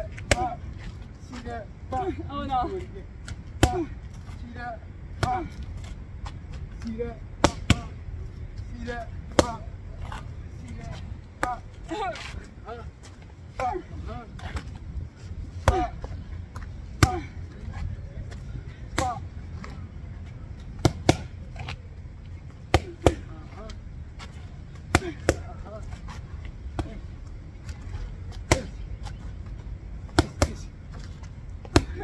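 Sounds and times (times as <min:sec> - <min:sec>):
boxing gloves smacking mitts: 0:28.3 - 0:28.8, 0:30.1 - 0:32.0.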